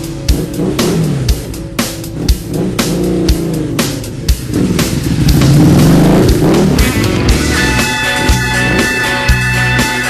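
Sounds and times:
blues rock band playing: 0:00.0 - 0:10.0
drum hits: 0:00.1 - 0:09.8.

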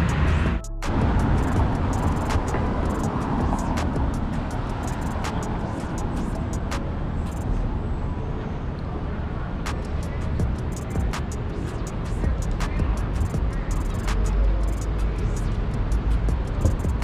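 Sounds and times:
sharp ticks: 0:00.0 - 0:07.4, 0:09.7 - 0:17.0
low rumble of passing vehicles: 0:00.0 - 0:17.0.

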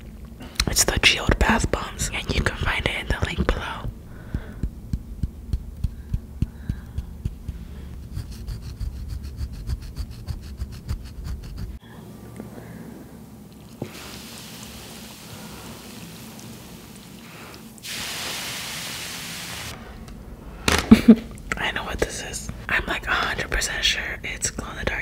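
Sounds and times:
fingernails tapping on bath bombs: 0:04.3 - 0:07.6
bath bomb fizzing in water: 0:13.8 - 0:19.6.

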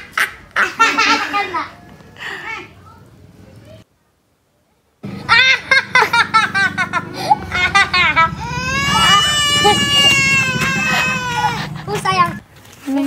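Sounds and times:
high-pitched laughter: 0:00.0 - 0:01.8, 0:05.1 - 0:12.4
toddler crying loudly: 0:08.3 - 0:12.0.

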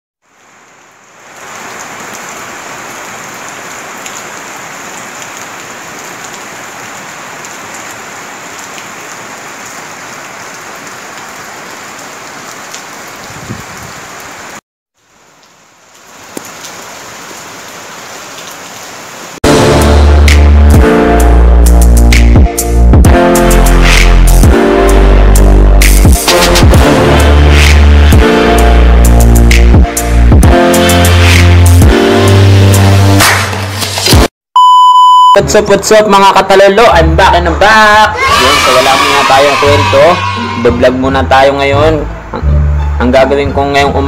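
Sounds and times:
steady rain falling: 0:00.2 - 0:19.4
loud music with heavy beat: 0:19.4 - 0:33.4.

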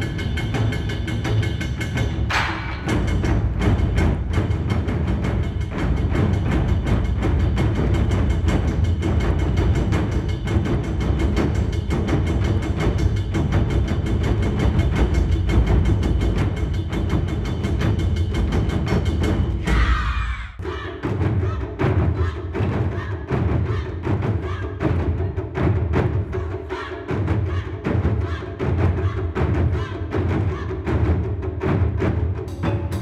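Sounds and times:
taiko drums booming: 0:00.0 - 0:33.0.

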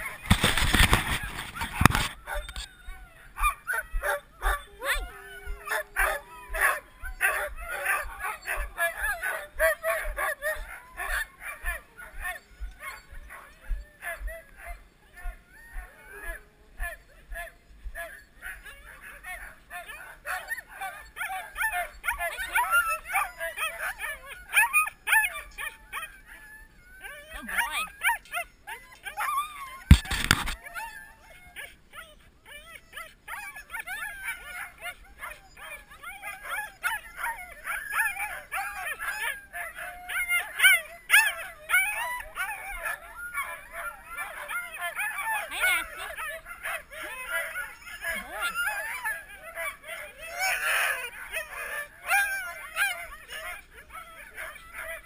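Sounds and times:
dogs barking and yipping: 0:00.0 - 0:55.0.

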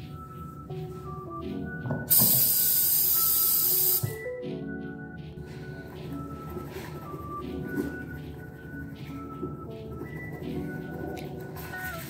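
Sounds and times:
tap running into sink: 0:01.9 - 0:02.7.

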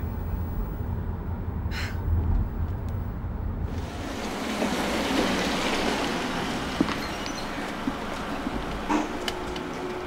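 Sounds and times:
car engine and road rumble: 0:00.0 - 0:10.0
tyres hissing on wet street: 0:03.7 - 0:10.0.

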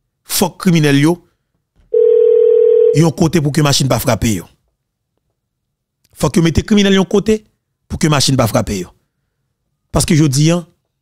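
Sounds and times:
telephone line tone: 0:01.9 - 0:03.1
person speaking: 0:02.9 - 0:04.6.

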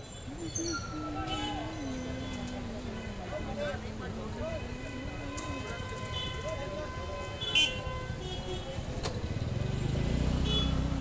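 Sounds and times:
street traffic: 0:00.0 - 0:11.0
vehicle engine rumble passing: 0:08.8 - 0:11.0.

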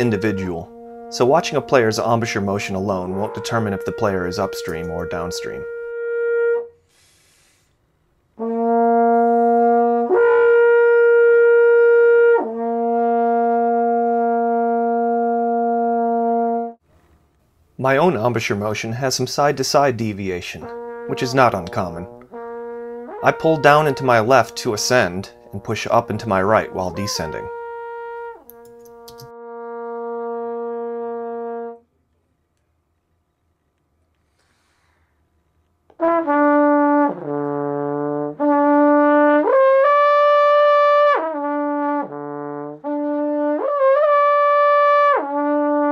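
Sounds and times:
brass instrument slurring notes: 0:00.0 - 0:07.7, 0:08.4 - 0:16.8, 0:19.8 - 0:31.8.

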